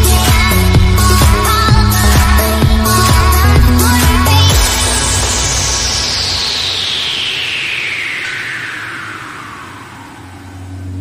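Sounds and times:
music: 0:00.0 - 0:11.0
falling whoosh: 0:04.5 - 0:11.0
low sustained bass tone: 0:10.1 - 0:11.0.

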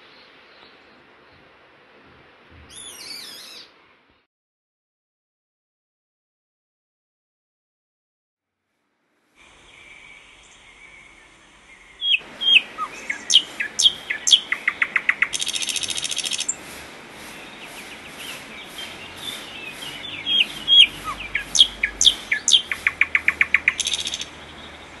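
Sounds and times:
small birds whistling and chattering: 0:02.7 - 0:03.7, 0:09.6 - 0:25.0
harsh buzzy bird call: 0:09.5 - 0:24.4.

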